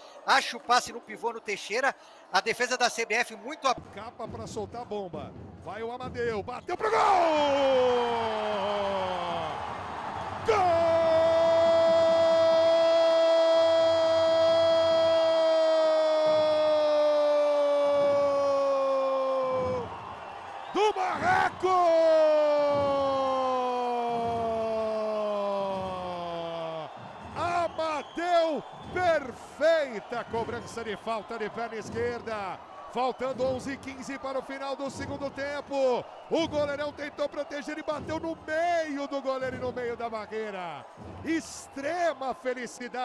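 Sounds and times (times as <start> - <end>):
commentator's long goal shout: 10.4 - 19.8
male commentator shouting: 10.4 - 19.8, 20.7 - 43.0.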